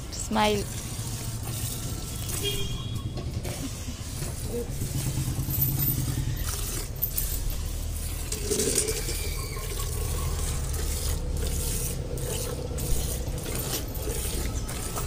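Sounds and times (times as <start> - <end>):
milk squirting into steel bucket: 0.7 - 15.0.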